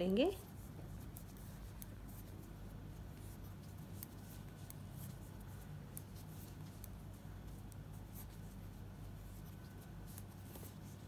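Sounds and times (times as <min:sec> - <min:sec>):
yarn rubbing: 0:00.0 - 0:11.0.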